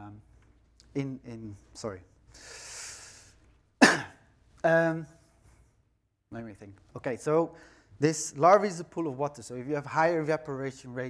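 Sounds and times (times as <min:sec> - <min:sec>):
man breathing in: 0:02.3 - 0:03.5, 0:07.6 - 0:08.0
man coughing: 0:03.8 - 0:04.3.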